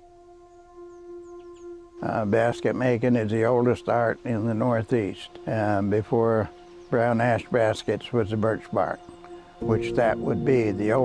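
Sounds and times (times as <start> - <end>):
flute holding long note: 0.0 - 11.0.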